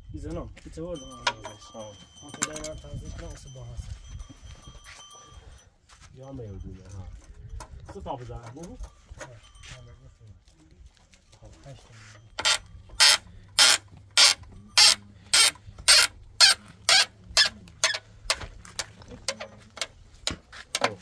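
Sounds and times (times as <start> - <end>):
hand saw cutting wood: 12.4 - 18.0.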